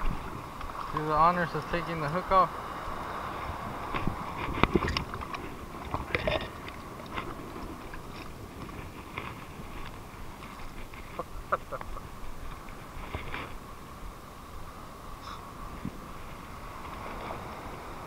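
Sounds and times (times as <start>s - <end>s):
steady background hiss: 0.0s - 4.7s, 7.7s - 18.0s
light clicks and scrapes: 3.9s - 13.6s.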